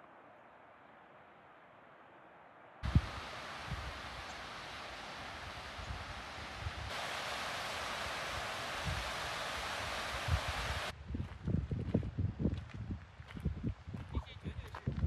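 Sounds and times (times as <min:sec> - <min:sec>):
stream cascading over rocks: 0:02.8 - 0:10.9.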